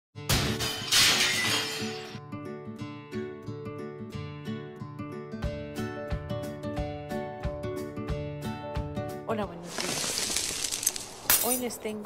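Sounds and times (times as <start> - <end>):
glass breaking crashes: 0.3 - 2.2
plucked guitar music: 2.2 - 7.6.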